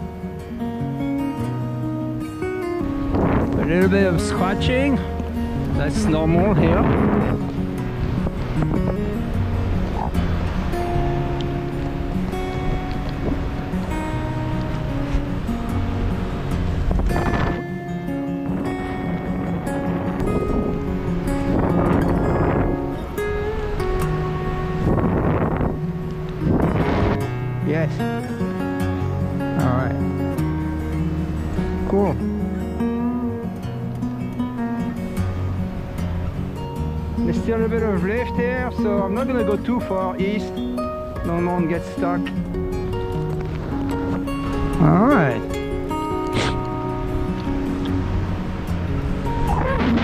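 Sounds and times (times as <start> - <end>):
fingerstyle acoustic guitar: 0.0 - 50.0
rushing swells: 2.2 - 39.0, 40.5 - 50.0.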